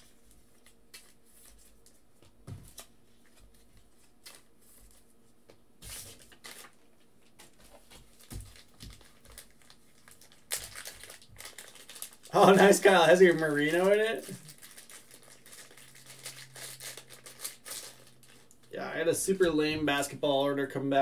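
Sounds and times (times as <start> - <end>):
trading cards and sleeves rustling: 5.8 - 18.7.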